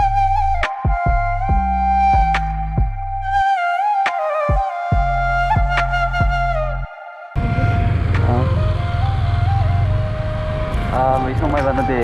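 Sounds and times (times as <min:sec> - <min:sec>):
slow flute melody: 0:00.0 - 0:12.0
motorcycle engine rumble: 0:07.4 - 0:12.0.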